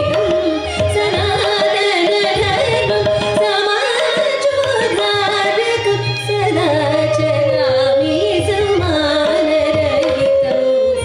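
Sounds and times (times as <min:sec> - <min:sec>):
violin: 0:00.0 - 0:11.0
women singing: 0:00.8 - 0:11.0.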